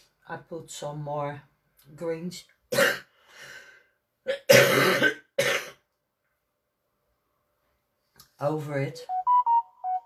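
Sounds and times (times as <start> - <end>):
person coughing: 2.7 - 3.1, 4.3 - 5.9.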